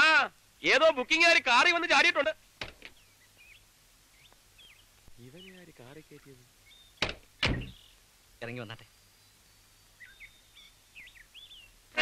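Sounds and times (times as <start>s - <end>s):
low hiss: 0.0s - 12.0s
bird chirping: 2.6s - 12.0s.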